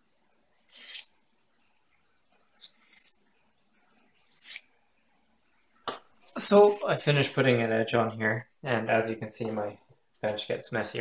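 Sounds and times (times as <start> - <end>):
knife scraping on sharpening plate: 0.7 - 1.1, 2.6 - 3.1, 4.3 - 4.6.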